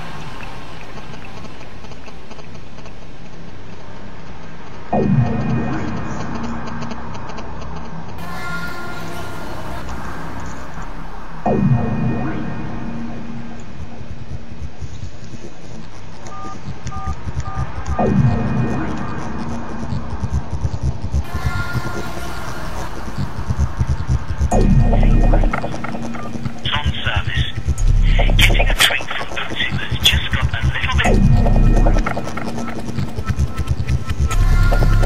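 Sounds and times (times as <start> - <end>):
steady low hum: 0.0 - 35.0
falling electronic tone: 10.8 - 15.0, 16.2 - 35.0
held electronic tone: 11.4 - 35.0
background music beat: 13.0 - 35.0
phone keypad beeps: 16.3 - 17.6.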